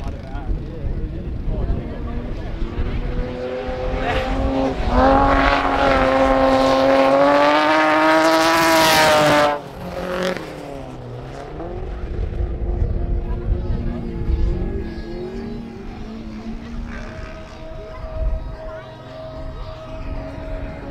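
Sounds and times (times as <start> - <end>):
quieter engine: 0.0 - 20.9
race car engines at high revs: 0.1 - 20.9.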